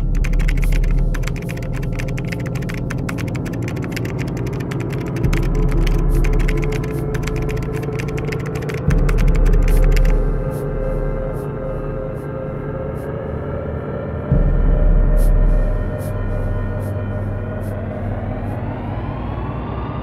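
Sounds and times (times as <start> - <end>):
rapid keystroke clicks: 0.0 - 10.2
low steady drone: 0.0 - 20.0.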